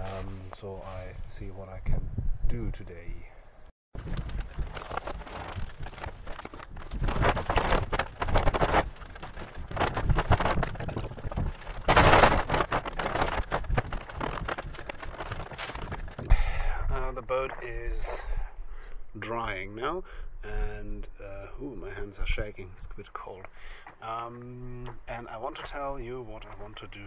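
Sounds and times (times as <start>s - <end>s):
wind rumbling on microphone: 0.0s - 19.1s
rustling handling noise: 4.0s - 16.3s.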